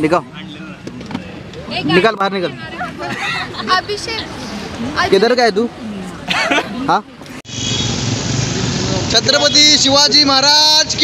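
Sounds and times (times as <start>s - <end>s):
traffic engine hum: 0.0s - 11.0s.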